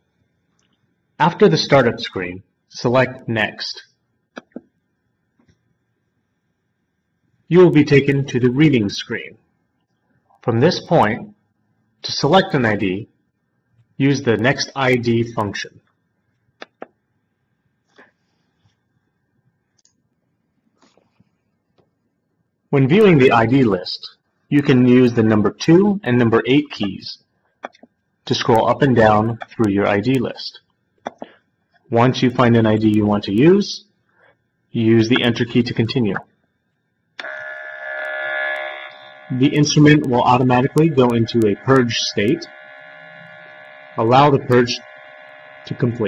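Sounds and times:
sample pump buzzing: 37.2 - 46.0.

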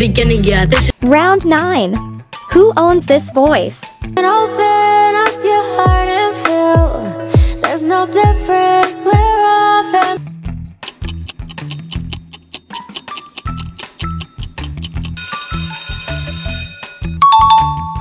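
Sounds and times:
ticking clock: 10.8 - 15.2.

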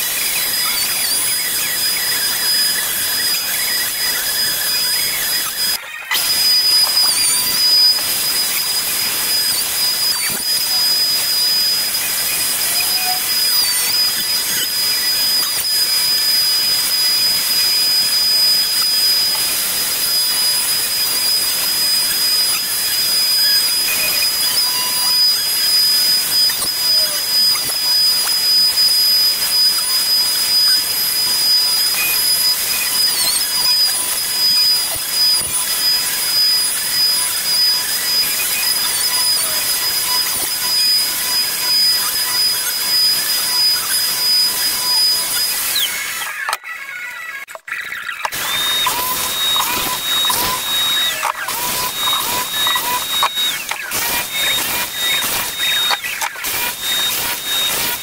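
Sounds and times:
router high whine: 0.0 - 58.0
dust extraction hose hiss: 0.1 - 46.0, 48.3 - 58.0.

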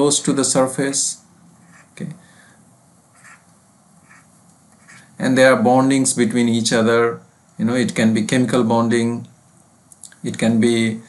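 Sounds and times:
low room hiss: 0.0 - 11.0
stylus squeaks on pen tablet: 1.6 - 2.0, 3.2 - 5.0.

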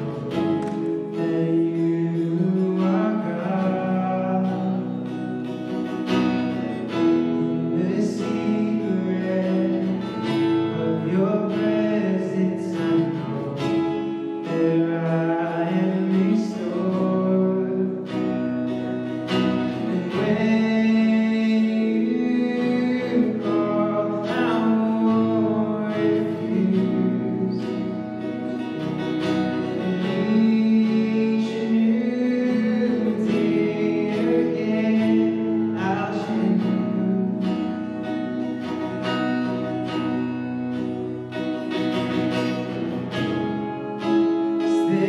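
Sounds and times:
strummed acoustic guitar: 0.0 - 45.0
man and woman singing: 29.8 - 37.6.

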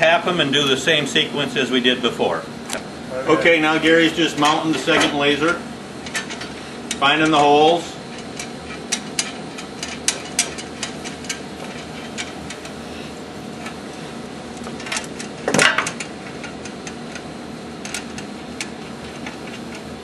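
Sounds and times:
room hum: 0.0 - 20.0.

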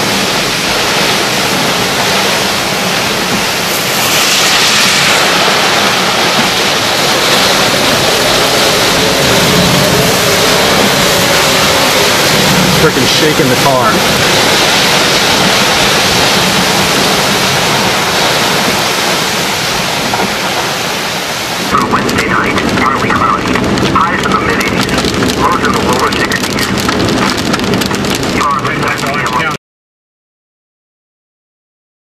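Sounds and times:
gusting wind: 0.0 - 29.3
car driving through rain: 0.0 - 29.6
heavy rain pounding on car: 0.0 - 29.6
voices: 12.8 - 14.1, 21.7 - 26.7, 28.4 - 29.6.

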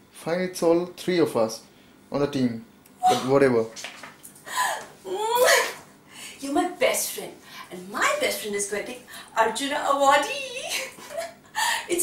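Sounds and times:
woman squealing: 3.0 - 3.4, 4.5 - 5.8.

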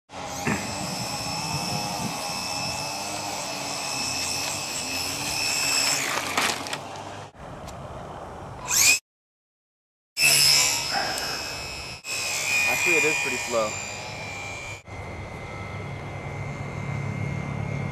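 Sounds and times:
electric propeller motor whine: 0.1 - 9.0, 10.2 - 17.9.

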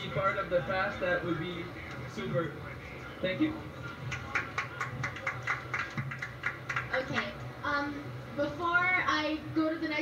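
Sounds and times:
low steady hum: 0.0 - 10.0
crowd handclaps: 4.0 - 7.4.

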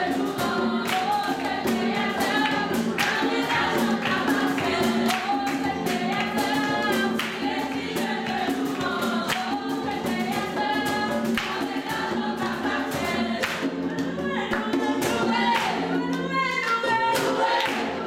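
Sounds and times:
group singing gospel song: 0.0 - 18.0
sharp percussive strokes: 0.0 - 18.0.

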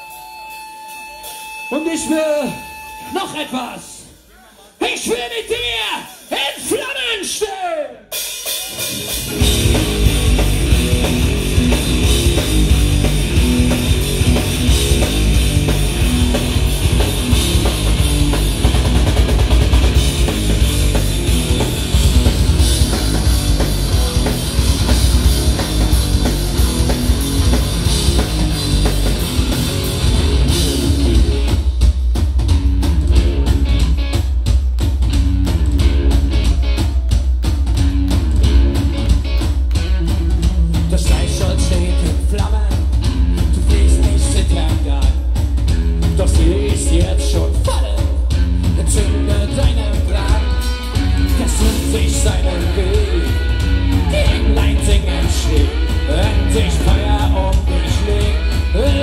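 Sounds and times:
drum kit: 0.0 - 59.0
bass guitar: 8.1 - 59.0
electric guitar: 8.4 - 31.9, 32.5 - 59.0.

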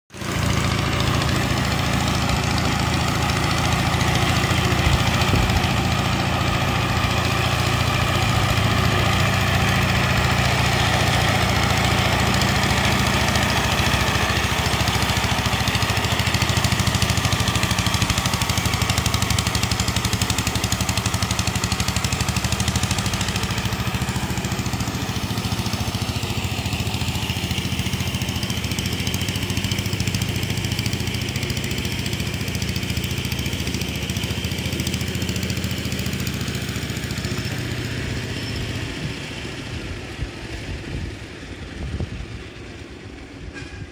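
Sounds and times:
road roller engine running: 0.1 - 43.9.

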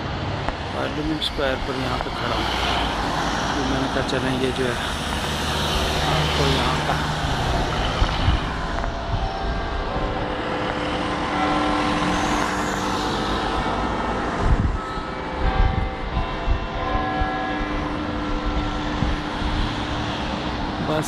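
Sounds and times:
vehicles driving past: 0.0 - 21.0.

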